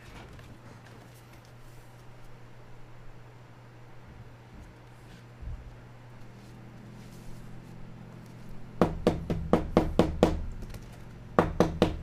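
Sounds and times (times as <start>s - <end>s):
sharp knocks on hard surface: 8.8s - 10.4s, 11.4s - 12.0s.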